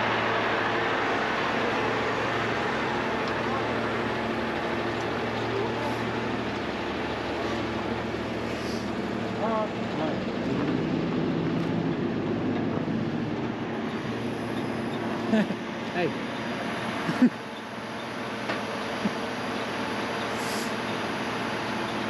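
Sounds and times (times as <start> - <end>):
diesel engine running: 0.0 - 22.0
hydraulics working winch: 0.0 - 22.0.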